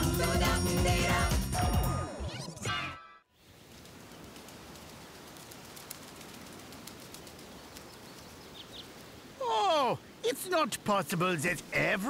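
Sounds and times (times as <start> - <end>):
outdoor nature ambience hiss: 3.3 - 12.0.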